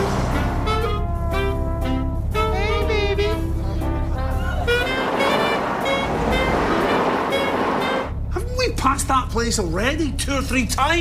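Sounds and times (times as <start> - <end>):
background music: 0.0 - 8.8
car driving in traffic: 3.5 - 8.4.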